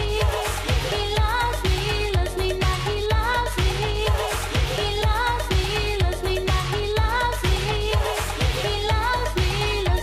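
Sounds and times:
disco dance music: 0:00.0 - 0:10.0.

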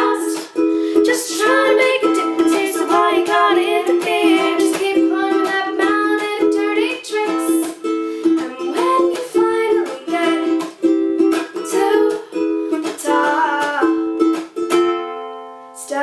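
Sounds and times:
ukulele strumming chords: 0:00.0 - 0:16.0.

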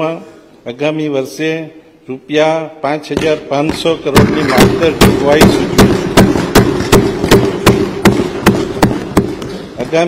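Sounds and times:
people thumping desks: 0:03.1 - 0:10.0.

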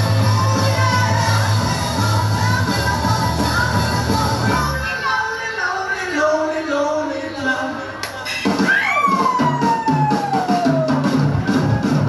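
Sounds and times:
drum and bass beat: 0:00.0 - 0:04.7, 0:08.2 - 0:12.0.

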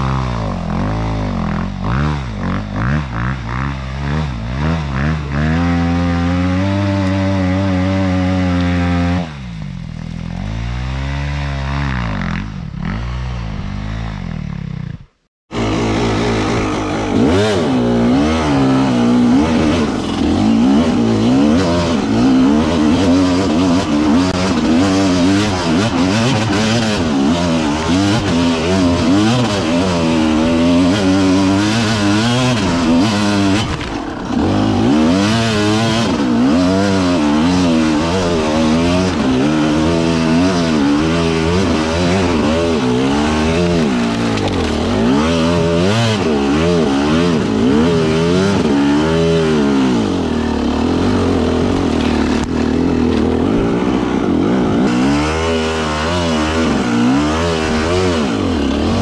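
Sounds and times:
motorcycle engine revving: 0:00.0 - 0:59.0.

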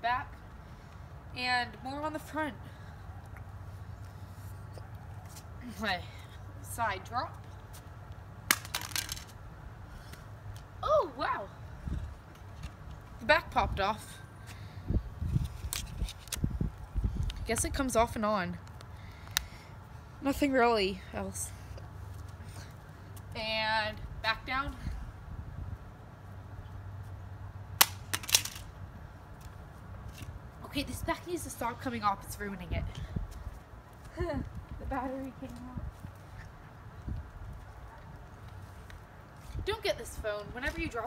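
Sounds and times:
phone cracking on concrete: 0:08.4 - 0:09.3, 0:27.8 - 0:28.7.

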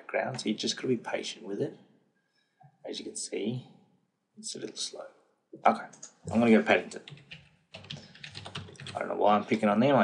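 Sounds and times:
computer keyboard typing: 0:05.9 - 0:09.2.

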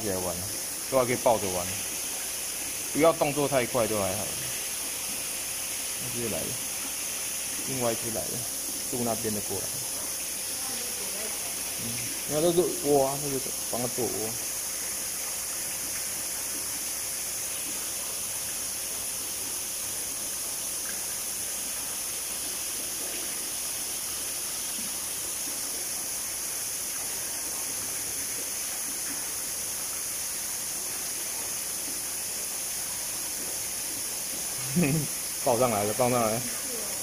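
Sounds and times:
water pouring into a pool: 0:00.0 - 0:37.0.

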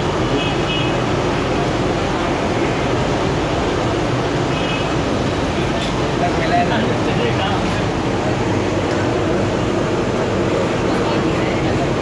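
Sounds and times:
street traffic rumble: 0:00.0 - 0:12.0
voices: 0:00.1 - 0:12.0.

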